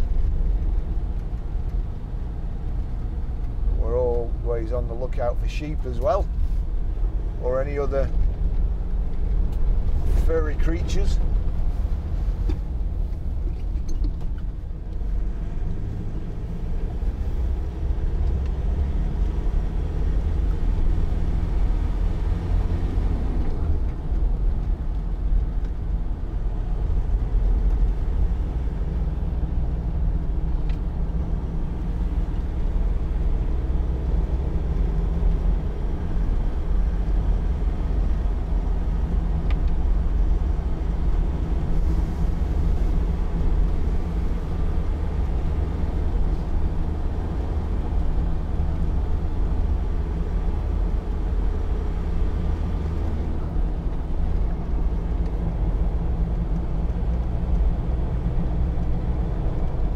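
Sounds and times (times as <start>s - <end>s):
diesel engine droning: 0.0s - 59.9s
road and tyre noise: 0.0s - 59.9s.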